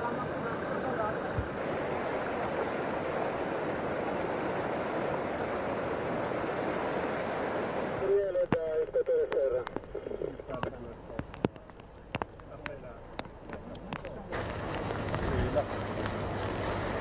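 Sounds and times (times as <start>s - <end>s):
floodwater rushing: 0.0s - 17.0s
person speaking: 8.0s - 11.7s.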